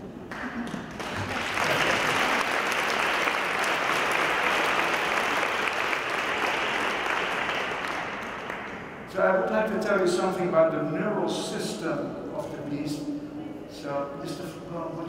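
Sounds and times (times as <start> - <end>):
audience applauding: 0.3 - 9.0.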